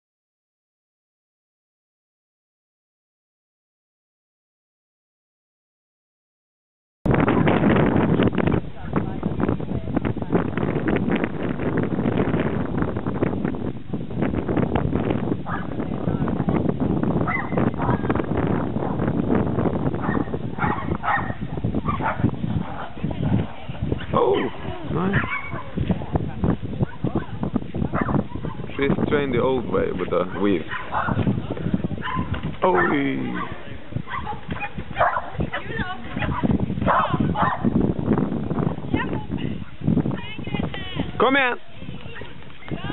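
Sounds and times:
wind buffeting microphone: 7.0s - 42.9s
dog yipping and barking: 17.3s - 18.0s, 20.0s - 22.9s, 25.1s - 25.8s, 28.0s - 28.6s, 30.3s - 31.2s, 32.0s - 33.5s, 34.1s - 35.4s, 36.2s - 37.7s.

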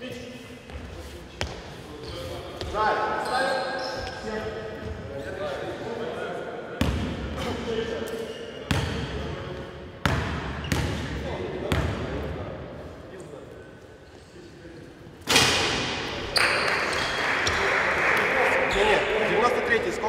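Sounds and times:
basketball bouncing on gym floor: 10.0s - 11.1s
players talking: 11.1s - 20.0s.

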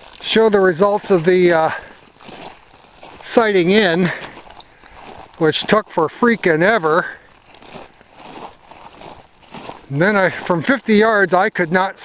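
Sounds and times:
footsteps on dry grass and snow: 0.0s - 12.0s.

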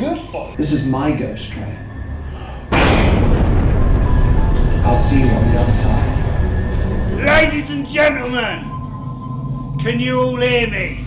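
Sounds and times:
low drone: 0.4s - 11.0s
deep rumble: 0.6s - 10.1s.

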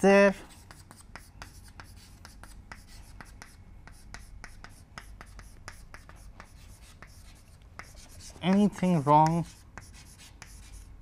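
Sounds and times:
chalk writing on chalkboard: 0.3s - 11.0s.

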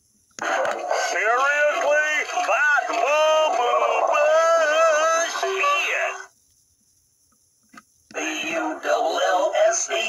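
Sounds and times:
sung voice from small speaker: 0.4s - 6.3s.

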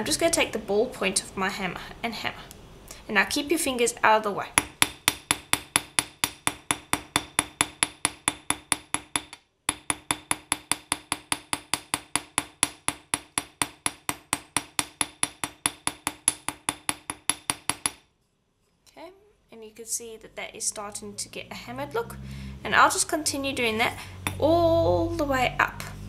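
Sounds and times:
hammer tapping wire on metal: 4.6s - 18.1s, 24.2s - 24.5s.

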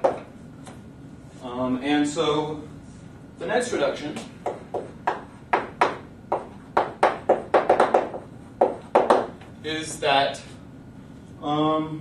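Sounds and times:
chalk tapping on blackboard: 0.0s - 0.3s, 4.4s - 9.3s.

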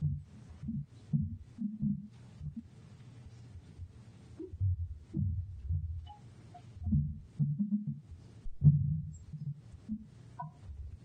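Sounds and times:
muffled footsteps and bumps: 0.0s - 6.1s, 6.8s - 11.0s.

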